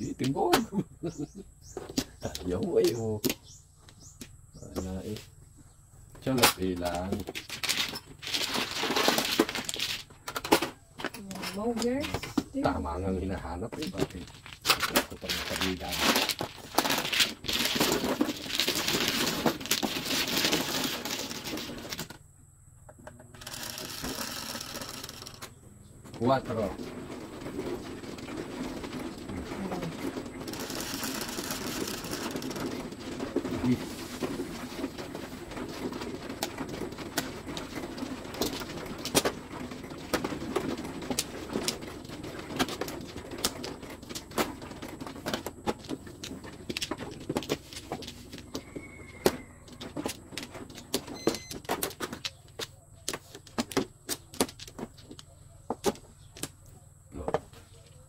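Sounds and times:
mahjong tiles clacking: 23.1s - 25.5s, 30.1s - 33.6s.

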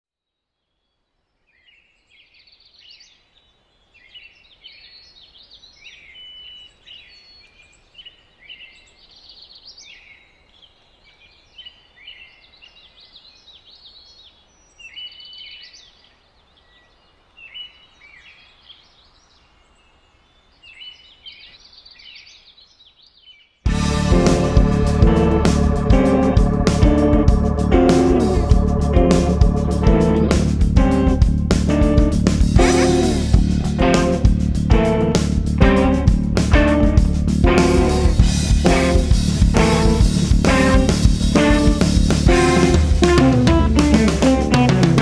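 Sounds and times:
birds chirping: 1.5s - 45.0s
loud band music: 23.7s - 45.0s.

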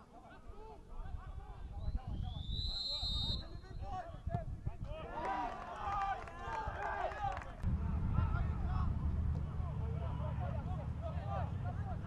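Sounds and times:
wind rumbling on microphone: 0.9s - 5.1s, 7.6s - 10.7s
referee's whistle blast: 2.4s - 3.6s.

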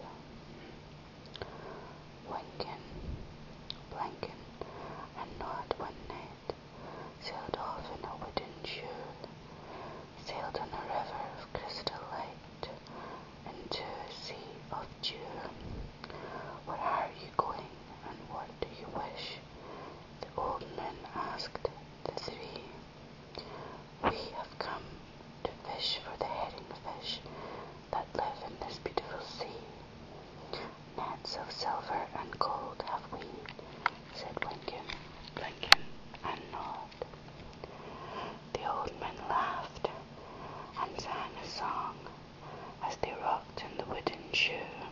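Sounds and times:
faint low hum: 0.0s - 44.9s
person whispering: 2.2s - 2.9s, 3.9s - 4.4s, 5.0s - 6.6s, 7.2s - 9.3s, 10.2s - 12.8s, 13.5s - 15.9s, 16.5s - 19.4s, 20.2s - 22.8s, 23.4s - 27.3s, 27.9s - 29.8s, 30.5s - 37.1s, 38.5s - 44.9s.

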